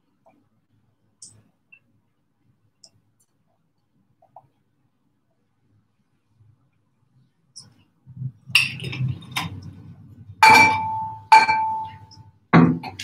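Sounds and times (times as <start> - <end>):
drinking glass clinking: 10.4 - 12.9.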